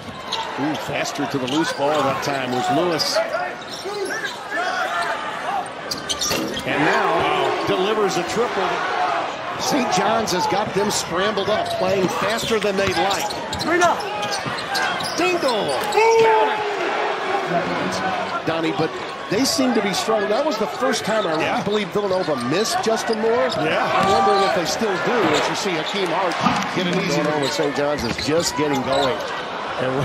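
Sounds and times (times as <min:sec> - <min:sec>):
sneakers squeaking: 0:00.0 - 0:06.8, 0:11.4 - 0:16.4, 0:20.8 - 0:29.3
murmur of arena crowd: 0:00.0 - 0:30.0
sneakers squeaking on hardwood: 0:05.9 - 0:07.3, 0:11.4 - 0:16.3, 0:21.1 - 0:24.6.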